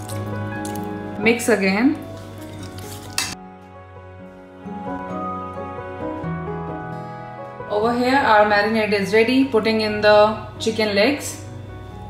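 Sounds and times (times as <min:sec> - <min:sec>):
background music: 0:00.0 - 0:12.0
fork clinking on steel bowl: 0:02.7 - 0:03.4.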